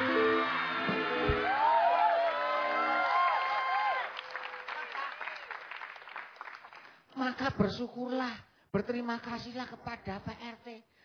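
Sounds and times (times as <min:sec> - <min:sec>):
audience clapping: 0:00.0 - 0:07.1.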